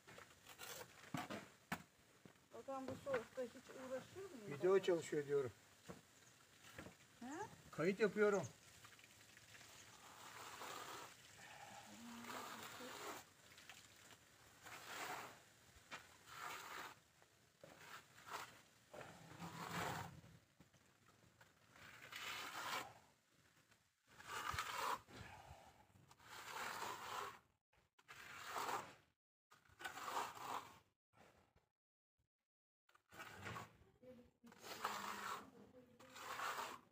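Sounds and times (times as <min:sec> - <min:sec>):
trowel scraping plaster: 0:00.2 - 0:01.9, 0:09.8 - 0:20.3, 0:21.4 - 0:25.5, 0:26.1 - 0:30.9, 0:32.9 - 0:33.8, 0:34.4 - 0:36.9.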